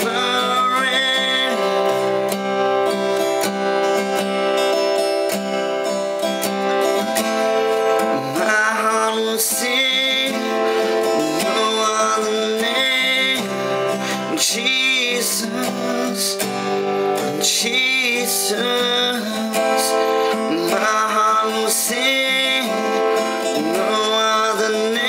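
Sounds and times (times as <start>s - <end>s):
man singing: 0.0s - 2.4s, 7.1s - 25.0s
acoustic guitar strumming: 0.0s - 25.0s.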